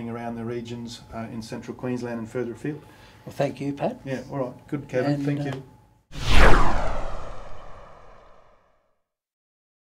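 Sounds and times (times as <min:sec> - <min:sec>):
whoosh sweep with deep rumble: 0:06.2 - 0:08.5.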